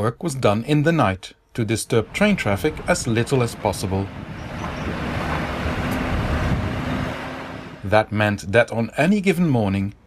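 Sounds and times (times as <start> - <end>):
bus driving past: 1.9 - 8.0.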